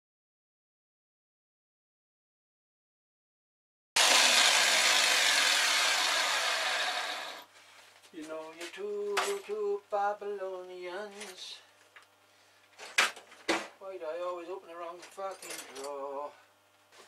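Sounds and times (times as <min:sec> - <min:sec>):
man singing: 0:08.2 - 0:11.6, 0:13.8 - 0:16.4.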